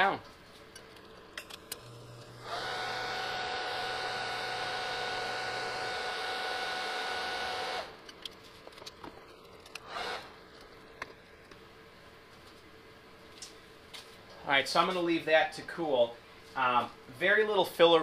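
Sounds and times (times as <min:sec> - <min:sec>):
welding arc hissing and whining: 0:01.7 - 0:08.0.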